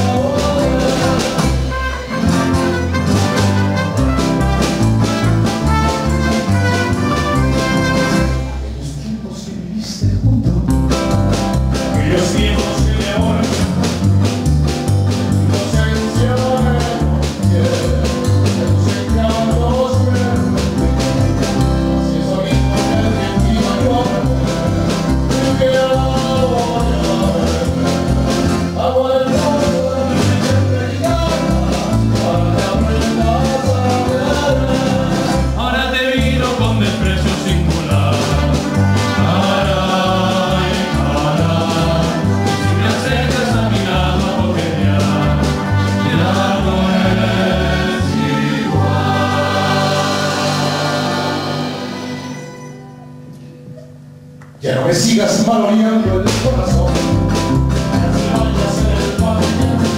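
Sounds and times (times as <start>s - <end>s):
men singing in harmony: 0.0s - 2.9s, 11.8s - 13.9s, 15.4s - 52.4s, 55.1s - 59.9s
pulsing bass line: 0.0s - 8.6s, 10.0s - 52.0s, 56.1s - 59.9s
strummed acoustic guitars: 0.0s - 8.8s, 10.6s - 54.2s, 55.3s - 59.9s
trumpet holding notes: 1.6s - 8.6s, 47.7s - 53.2s.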